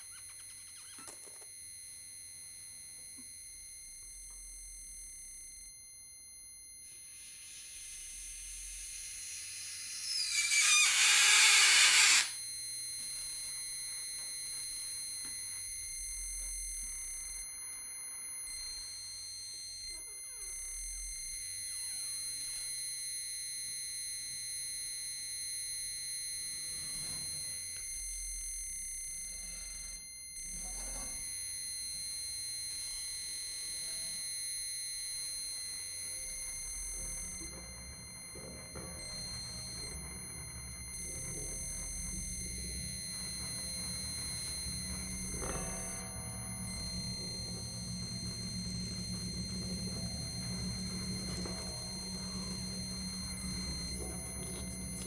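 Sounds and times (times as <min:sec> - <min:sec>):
piercing high electronic tone: 0:00.0 - 0:55.0.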